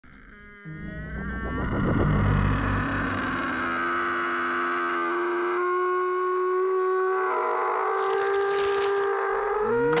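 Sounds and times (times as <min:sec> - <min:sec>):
low rumble: 0:00.0 - 0:04.9.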